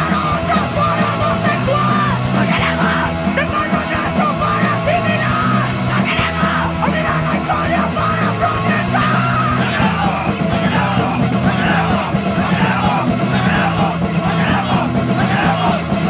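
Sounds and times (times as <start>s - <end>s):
person yelling vocals: 0.0s - 11.9s
bass: 0.0s - 16.0s
distorted electric guitars: 0.0s - 16.0s
fast drums: 0.0s - 16.0s.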